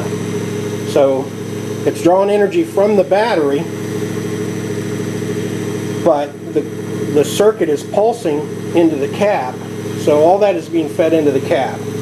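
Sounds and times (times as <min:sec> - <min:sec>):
pulse motor humming: 0:00.0 - 0:12.0.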